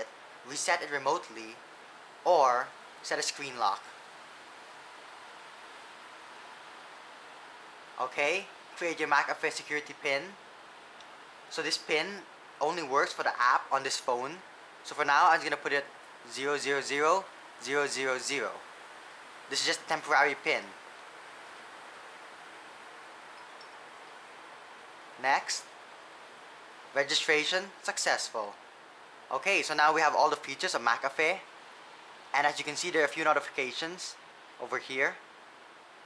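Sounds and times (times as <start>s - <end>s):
heavy rain hissing: 0.0s - 36.0s.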